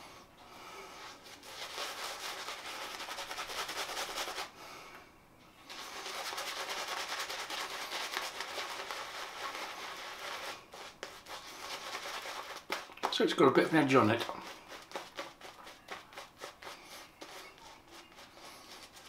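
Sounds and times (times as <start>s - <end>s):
shaving brush scrubbing lather: 1.4s - 4.5s, 5.7s - 12.9s, 14.1s - 19.0s.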